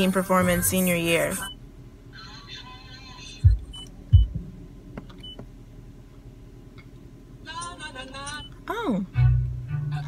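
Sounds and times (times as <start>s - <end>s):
dull low thumps: 3.4s - 5.5s.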